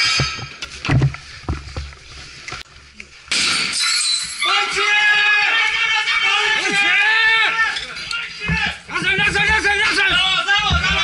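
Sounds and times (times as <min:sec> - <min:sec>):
several voices shouting: 0:04.4 - 0:11.0.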